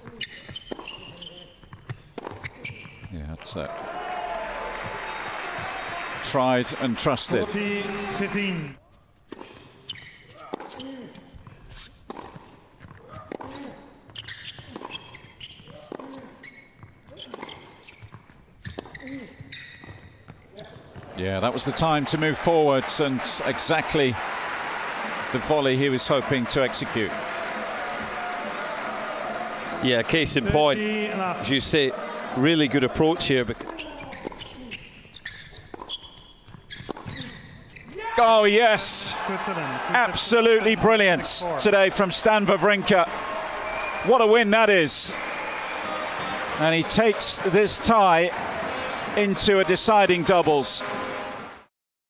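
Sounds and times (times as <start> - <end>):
shoes squeaking on court: 0.0 - 3.2, 8.9 - 21.2, 33.5 - 38.0
tennis ball bouncing: 0.2 - 2.9, 11.4 - 16.1, 33.5 - 34.6, 35.3 - 37.4
racket striking tennis ball: 12.0 - 13.7, 14.7 - 16.2, 36.8 - 37.3.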